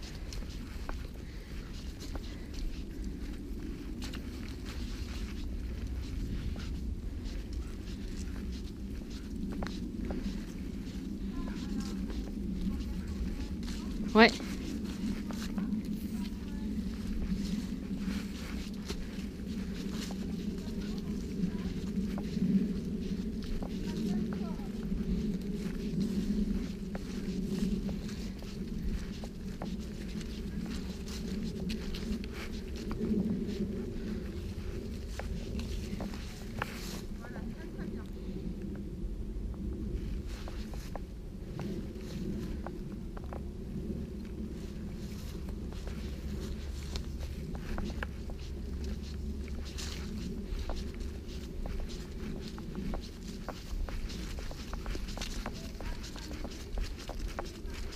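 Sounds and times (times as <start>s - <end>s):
footsteps on leaf-strewn dirt path: 0.0s - 38.8s, 39.5s - 57.9s.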